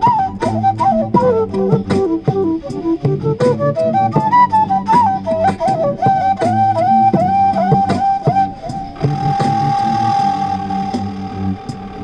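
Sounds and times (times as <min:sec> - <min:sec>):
low sustained backing: 0:00.0 - 0:12.0
regular clicking beat: 0:00.0 - 0:12.0
wooden flute melody: 0:00.0 - 0:12.0.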